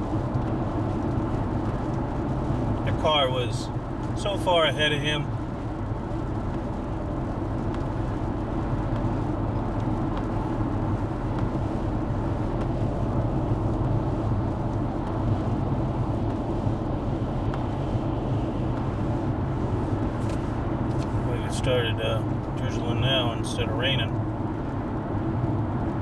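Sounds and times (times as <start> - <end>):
engine hum: 0.0 - 26.0
road noise: 0.0 - 26.0.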